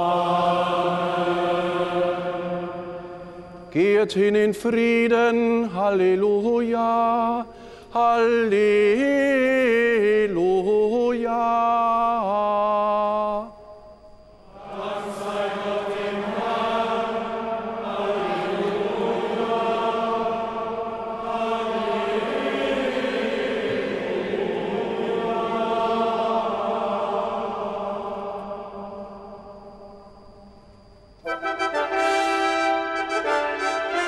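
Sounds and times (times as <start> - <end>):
congregation and choir singing: 0.0 - 13.5, 14.4 - 34.0.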